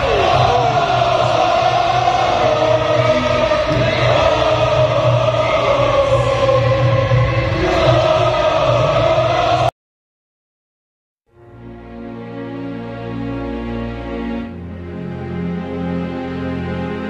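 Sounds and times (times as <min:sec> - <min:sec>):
crowd singing a chant: 0:00.0 - 0:09.7.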